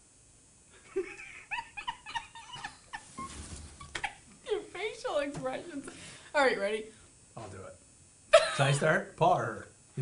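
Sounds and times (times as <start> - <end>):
squeaky stifled giggles: 1.0 - 4.3.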